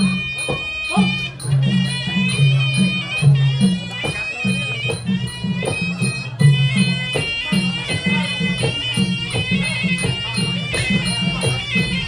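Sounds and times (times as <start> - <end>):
shrill reed pipe melody: 0.0 - 12.0.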